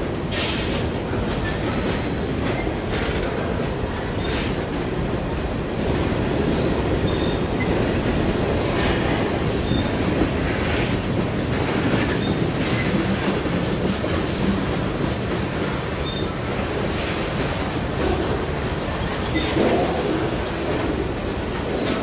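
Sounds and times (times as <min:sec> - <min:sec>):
train wheels rumbling on rail: 0:00.0 - 0:22.0.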